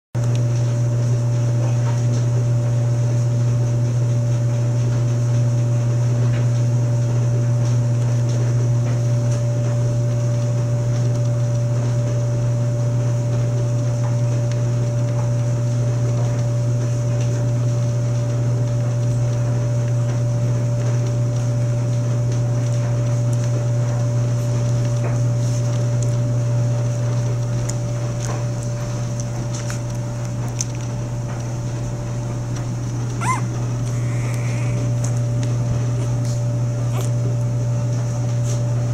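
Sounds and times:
low machine hum: 0.2 - 38.9.

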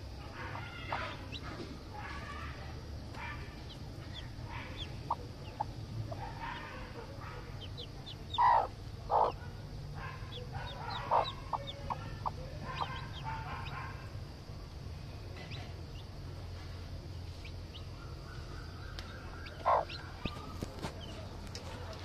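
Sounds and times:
chick peeping: 0.2 - 14.7, 17.2 - 22.0
hen clucking: 0.3 - 2.4, 3.6 - 9.4, 10.0 - 13.9, 19.0 - 21.2.

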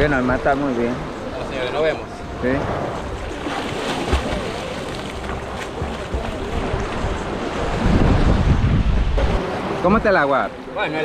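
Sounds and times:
water sloshing and waves: 0.0 - 11.0
wind on microphone: 2.4 - 9.6
person splashing into water: 3.4 - 6.6.

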